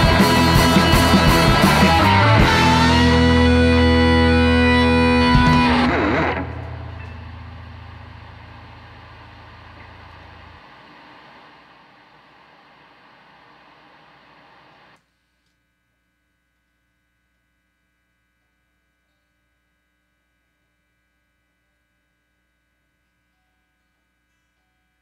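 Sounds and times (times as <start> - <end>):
distorted electric guitar chord: 0.0 - 15.0
guitar amps ringing out: 0.0 - 15.0
drum hit: 5.2 - 8.8.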